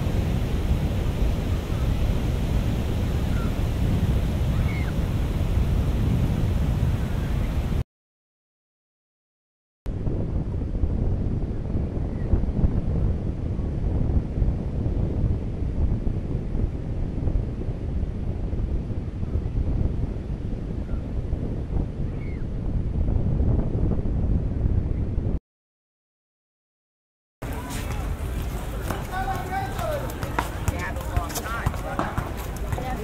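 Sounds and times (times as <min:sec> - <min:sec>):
ocean waves washing: 0:00.0 - 0:07.8, 0:27.4 - 0:33.0
wind buffeting microphone: 0:00.0 - 0:07.8, 0:09.9 - 0:25.4, 0:27.4 - 0:33.0.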